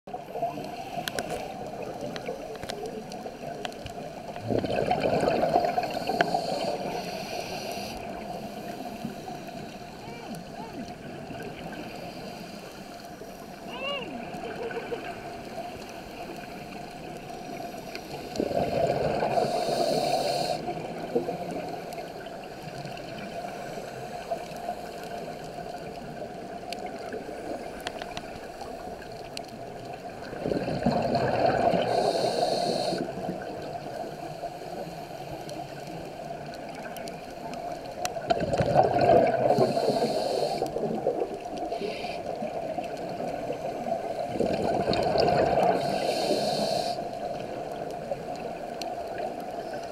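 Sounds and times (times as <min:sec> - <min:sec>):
exhaled bubbles rumbling underwater: 0:00.1 - 0:12.4, 0:14.1 - 0:49.9
faint clicks: 0:00.6 - 0:04.4, 0:05.8 - 0:08.2, 0:24.2 - 0:30.0
steady hiss: 0:05.3 - 0:10.6, 0:11.2 - 0:13.8, 0:15.2 - 0:30.4, 0:31.7 - 0:38.2, 0:39.4 - 0:44.3, 0:45.5 - 0:49.9.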